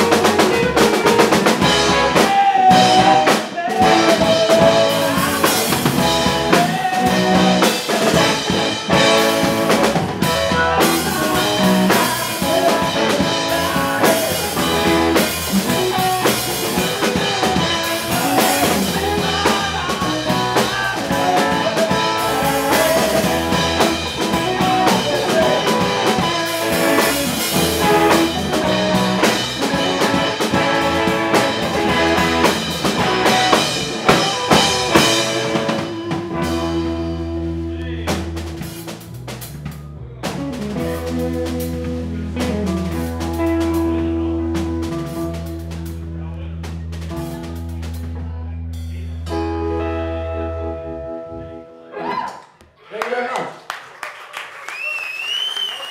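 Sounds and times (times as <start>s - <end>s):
drum kit: 0.0s - 50.4s
electric bass: 0.0s - 51.9s
electric guitars: 0.0s - 52.2s.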